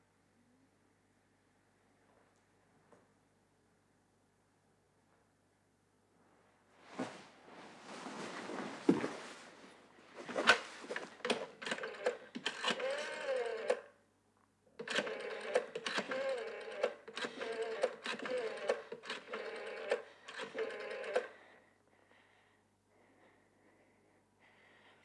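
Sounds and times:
rotary telephone dial clicking: 0:11.2 - 0:13.9, 0:14.8 - 0:21.4.

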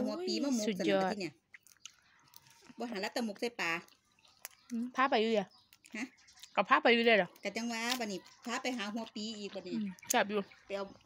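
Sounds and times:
wet mouth clicks chewing: 0:01.4 - 0:06.7, 0:07.3 - 0:11.0.

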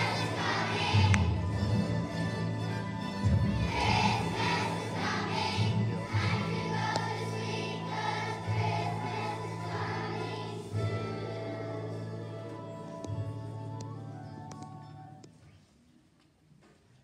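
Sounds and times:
children singing together: 0:00.0 - 0:01.6, 0:03.5 - 0:12.7
musical accompaniment: 0:00.0 - 0:15.5.

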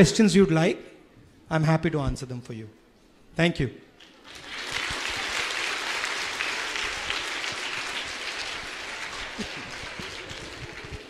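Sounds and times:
large audience applauding: 0:04.0 - 0:11.0.

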